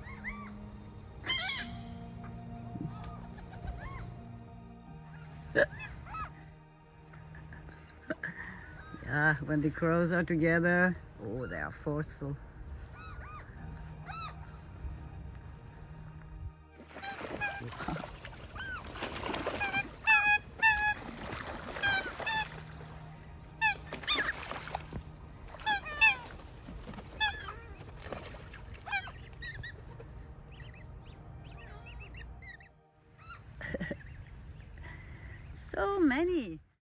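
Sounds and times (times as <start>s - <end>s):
birds calling loudly: 1.2s - 4.3s, 12.8s - 14.4s, 25.6s - 35.3s.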